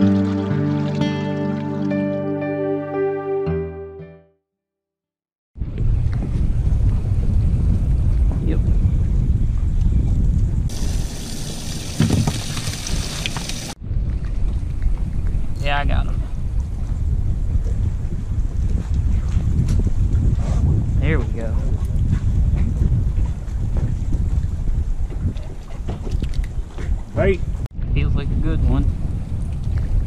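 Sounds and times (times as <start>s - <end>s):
wind buffeting microphone: 5.6s - 30.0s.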